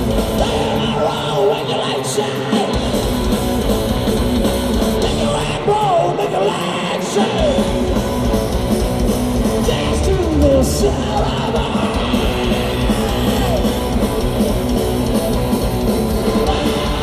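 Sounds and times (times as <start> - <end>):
live heavy rock song: 0.0 - 17.0.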